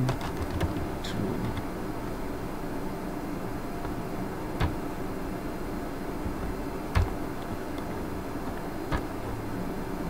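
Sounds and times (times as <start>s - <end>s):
steady background hum: 0.0s - 10.0s.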